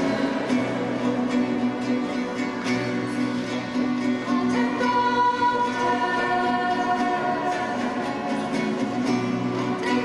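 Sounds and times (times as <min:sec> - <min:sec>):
acoustic guitar: 0:00.0 - 0:10.0
women singing a worship song: 0:04.4 - 0:07.5.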